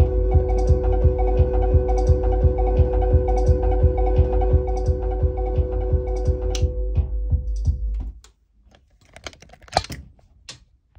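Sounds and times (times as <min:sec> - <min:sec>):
phone handling clicks and knocks: 0:08.7 - 0:10.1.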